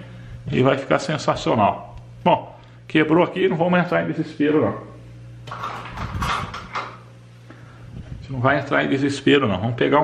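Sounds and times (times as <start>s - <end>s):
steady low hum: 0.0s - 10.0s
rustling and clattering by hand: 5.5s - 7.1s.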